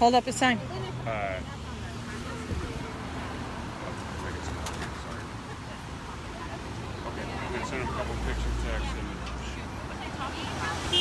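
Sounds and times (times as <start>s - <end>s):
traffic: 0.0s - 11.0s
wind: 0.0s - 11.0s.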